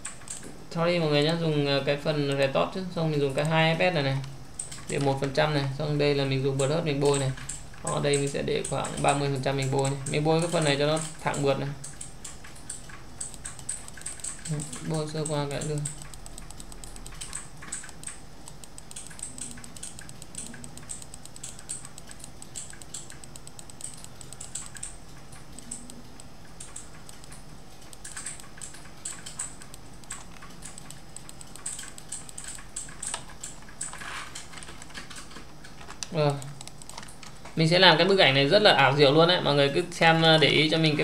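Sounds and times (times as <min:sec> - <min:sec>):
keyboard and mouse clicking: 0:00.0 - 0:00.6, 0:04.2 - 0:05.4, 0:06.6 - 0:37.6.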